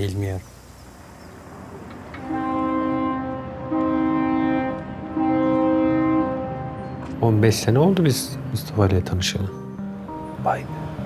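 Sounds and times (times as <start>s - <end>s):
deep chord-like tones: 1.5s - 11.0s.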